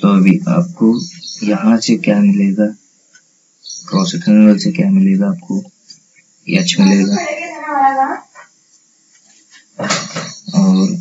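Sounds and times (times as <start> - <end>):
man speaking: 0.0 - 2.8, 3.9 - 5.7, 6.5 - 7.3, 10.5 - 11.0.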